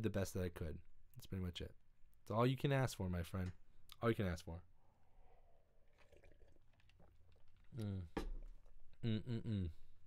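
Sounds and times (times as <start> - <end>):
sips and swallows: 5.4 - 7.9.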